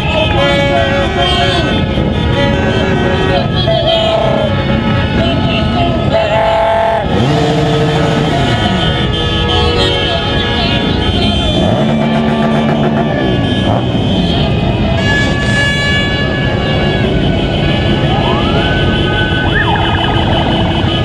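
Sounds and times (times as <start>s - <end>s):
crowd noise: 0.0s - 21.0s
horns blowing: 0.0s - 21.0s
motorcycle engines revving: 0.0s - 21.0s.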